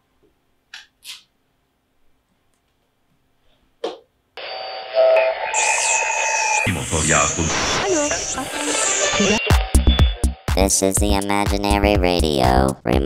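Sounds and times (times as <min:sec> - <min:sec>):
whistling tones: 0:04.5 - 0:07.4
radio static: 0:05.2 - 0:09.7
radio voices: 0:05.6 - 0:09.5.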